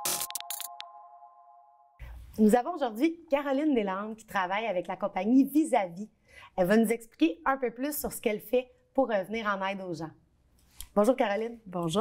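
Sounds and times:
sharp glitchy clicks: 0.0s - 0.9s
electronic theme music: 0.0s - 2.0s.

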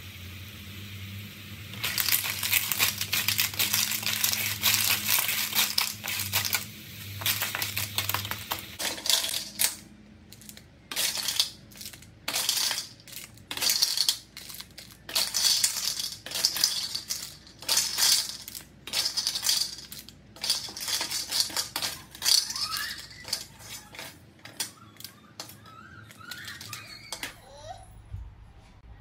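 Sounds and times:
shells clattering in a metal wok: 1.7s - 25.6s, 26.3s - 27.3s.

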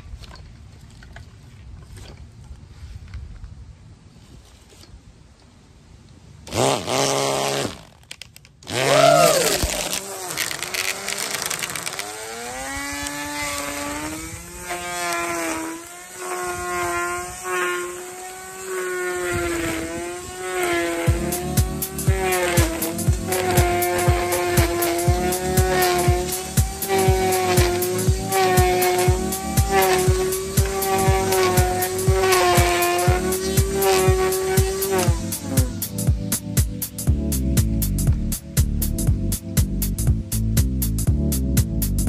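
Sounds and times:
electric string trimmer whining: 6.4s - 37.0s.

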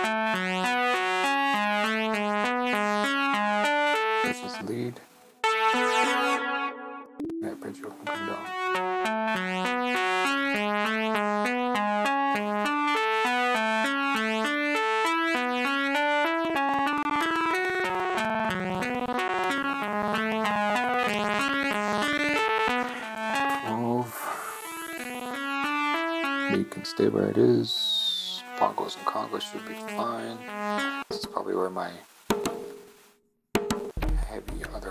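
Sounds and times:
synthesizer arpeggio: 5.4s - 27.8s, 28.4s - 31.1s.

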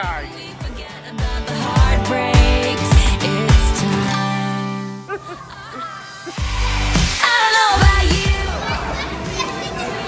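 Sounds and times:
pop music: 0.0s - 10.0s
excited children chattering: 8.2s - 10.0s.

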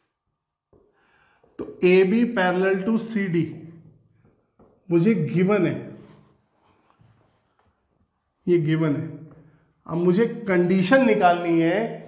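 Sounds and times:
marker pen on whiteboard: 0.0s - 12.0s.

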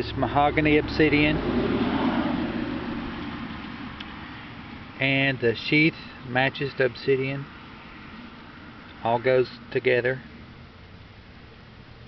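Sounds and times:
passing road vehicle rushing: 0.0s - 5.4s.

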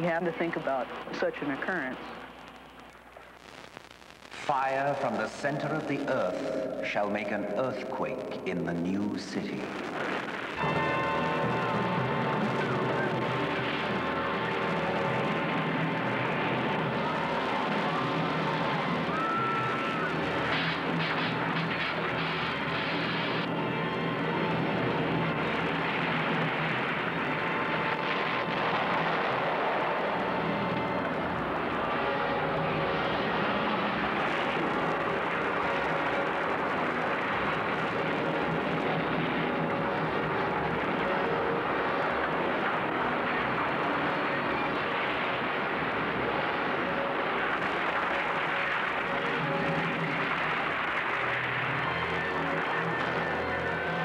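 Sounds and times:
faint music: 0.0s - 54.0s.

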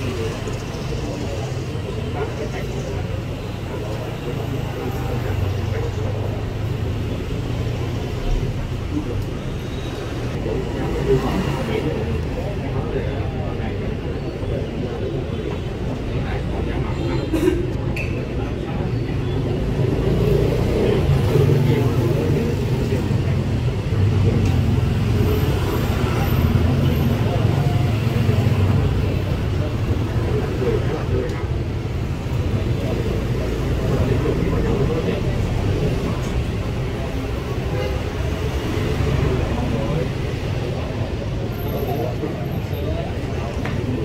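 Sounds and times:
road traffic noise: 0.0s - 44.0s.

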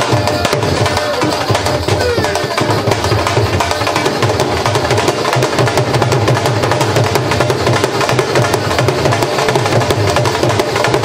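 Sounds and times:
barrel drums beaten fast: 0.0s - 11.0s.

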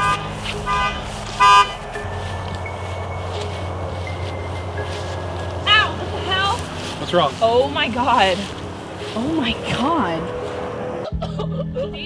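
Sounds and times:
truck horn toots: 0.0s - 2.1s
steady low hum: 0.0s - 6.8s.

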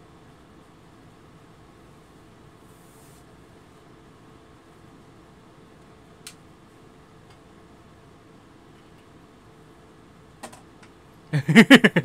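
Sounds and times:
man laughing: 11.3s - 12.0s.

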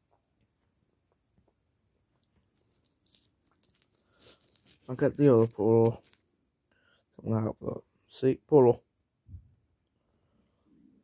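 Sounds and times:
person speaking: 4.2s - 6.2s, 7.2s - 8.8s.

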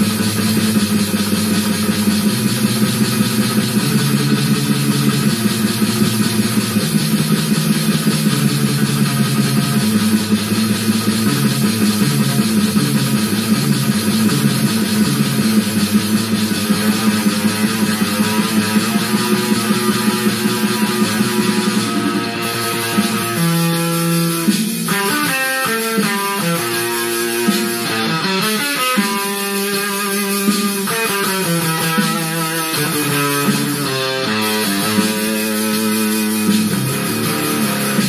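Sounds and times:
distorted electric guitar riffs: 0.0s - 38.0s
fast drum loop: 0.0s - 38.0s.

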